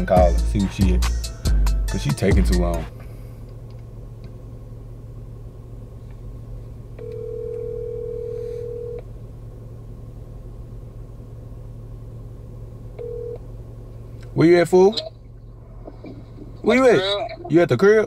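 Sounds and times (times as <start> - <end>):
low car cabin hum: 0.0 - 18.0
phone ringback tone: 7.0 - 9.0, 13.0 - 13.4.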